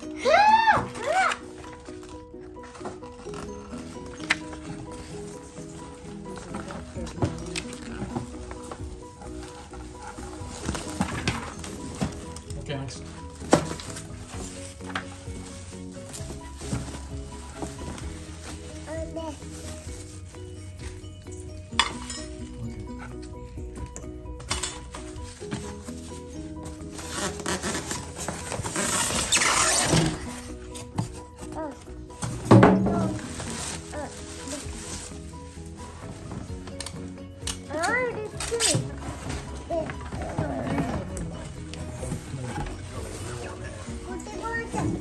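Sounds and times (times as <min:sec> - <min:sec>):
background music: 0:00.0 - 0:45.0
plastic wrap and cardboard rustling: 0:00.0 - 0:45.0
child's voice: 0:18.8 - 0:19.5, 0:31.5 - 0:31.9, 0:33.9 - 0:34.6, 0:37.7 - 0:38.9, 0:39.6 - 0:40.8, 0:44.0 - 0:45.0.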